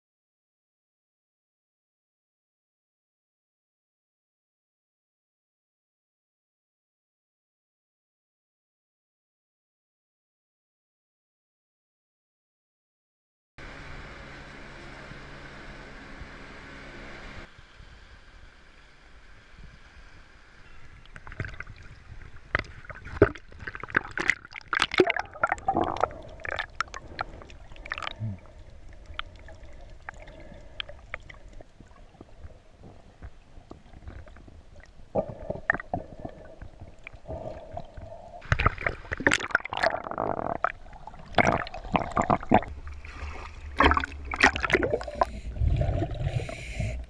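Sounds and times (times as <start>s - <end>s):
steady mechanical drone: 13.6s - 20.8s
water lapping and sloshing: 20.0s - 40.1s, 40.7s - 46.8s.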